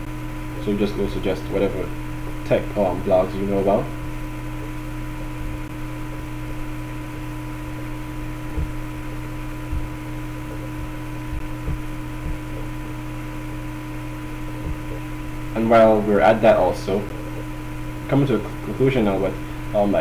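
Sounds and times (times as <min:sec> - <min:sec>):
soft low knocks: 0:00.0 - 0:15.6, 0:16.4 - 0:18.7
electrical hum with hiss: 0:00.0 - 0:20.0.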